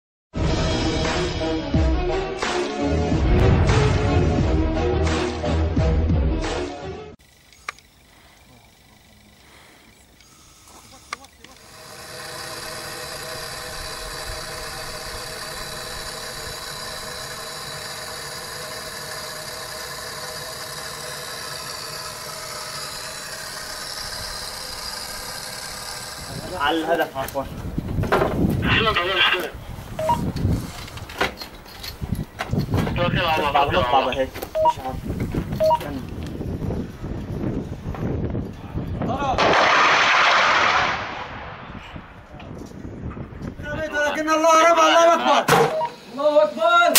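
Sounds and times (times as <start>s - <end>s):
machine hum with high whine: 10.2s - 28.9s
missile launch rushing hiss: 39.4s - 42.2s.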